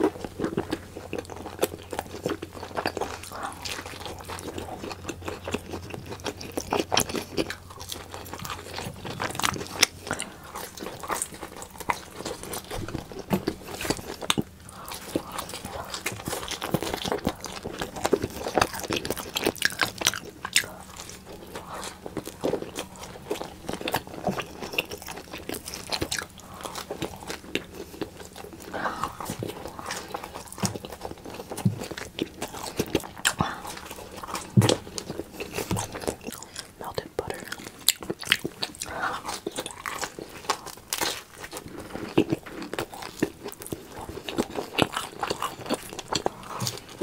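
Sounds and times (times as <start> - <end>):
biting and chewing pizza: 0.0 - 47.0.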